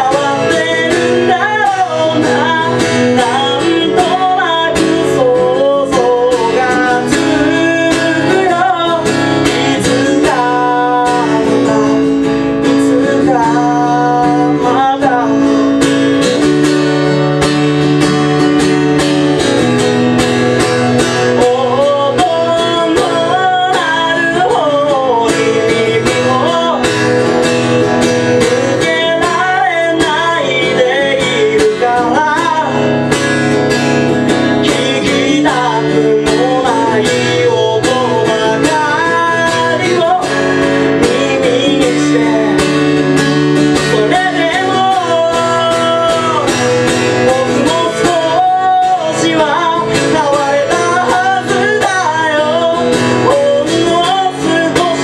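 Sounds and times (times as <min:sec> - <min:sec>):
acoustic guitar strumming: 0:00.0 - 0:55.0
man singing: 0:00.0 - 0:55.0.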